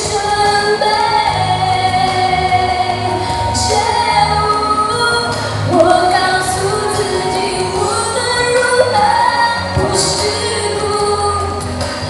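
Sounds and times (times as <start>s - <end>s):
backing track: 0.0s - 12.0s
woman singing pop ballad: 0.0s - 12.0s.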